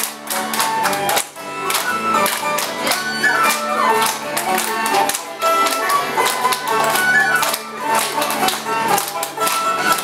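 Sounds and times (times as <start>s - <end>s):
folk tune on guitar: 0.0s - 10.0s
hand clapping: 0.0s - 10.0s
small wind instrument melody: 0.3s - 10.0s.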